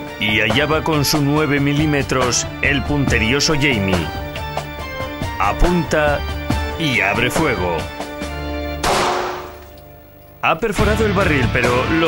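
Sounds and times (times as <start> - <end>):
background music: 0.0 - 12.0
pistol shot with ringing tail: 8.8 - 9.7.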